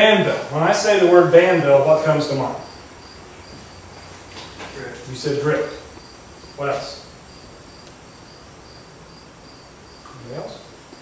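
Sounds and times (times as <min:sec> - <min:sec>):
cricket chirping: 0:01.9 - 0:11.0.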